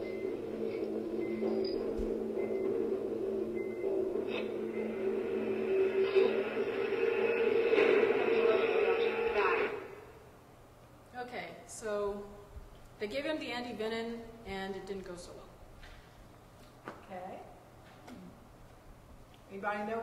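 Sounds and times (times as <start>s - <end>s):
voices: 4.3s - 10.1s.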